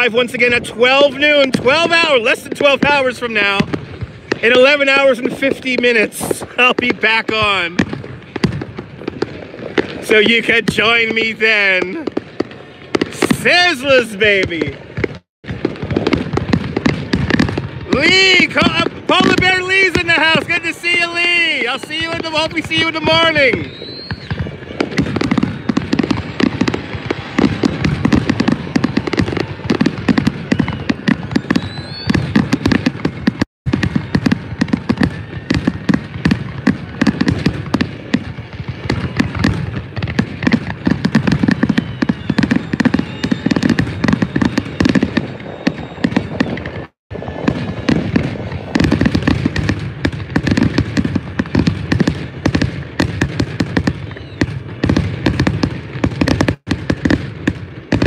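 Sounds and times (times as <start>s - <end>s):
fireworks bangs and crackling: 0.0s - 58.0s.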